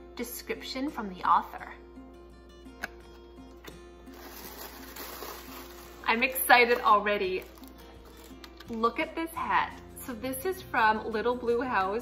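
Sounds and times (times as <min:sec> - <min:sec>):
faint background music: 0:00.0 - 0:12.0
packaging rustling: 0:04.1 - 0:08.8.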